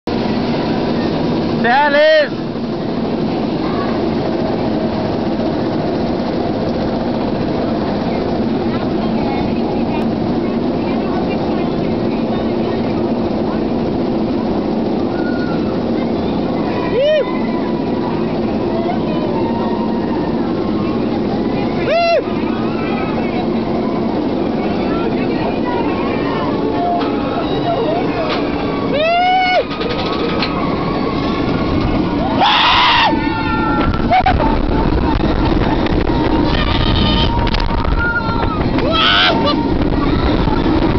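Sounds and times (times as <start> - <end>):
roller coaster rumble: 0.0 - 40.9
riders screaming: 27.4 - 40.8.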